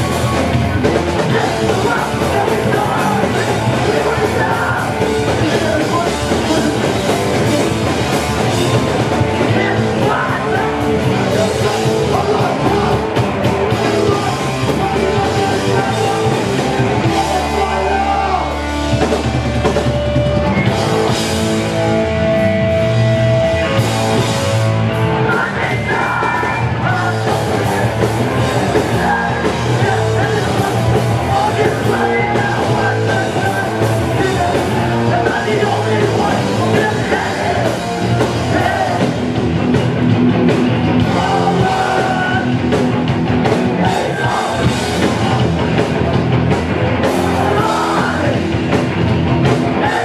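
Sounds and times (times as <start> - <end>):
bass guitar: 0.0 - 50.0
distorted electric guitars: 0.0 - 50.0
drum kit: 0.0 - 50.0
punk band playing live: 0.0 - 50.0
person singing: 1.2 - 7.8, 8.6 - 18.8, 25.2 - 39.3, 41.0 - 42.6, 47.0 - 48.6.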